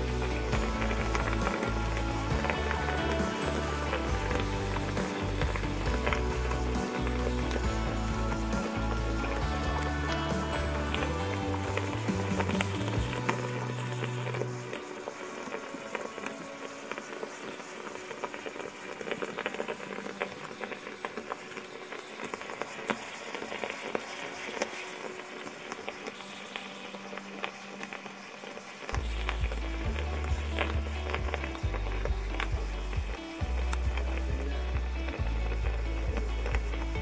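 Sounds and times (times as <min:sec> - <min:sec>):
background music: 0:00.0 - 0:37.0
moka pot bubbling and sputtering: 0:00.0 - 0:37.0.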